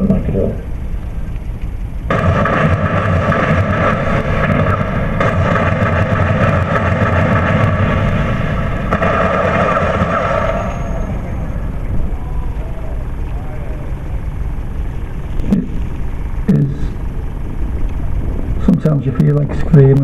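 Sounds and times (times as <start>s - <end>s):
dense low rumbling drone: 0.0s - 20.0s.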